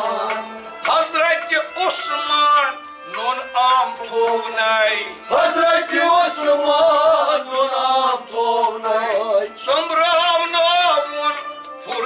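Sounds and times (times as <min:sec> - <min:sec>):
harmonium: 0:00.0 - 0:12.0
man singing: 0:00.0 - 0:12.0.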